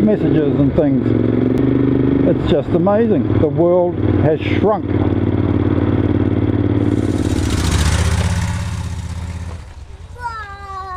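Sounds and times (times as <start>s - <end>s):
motorcycle engine running: 0.0s - 10.2s.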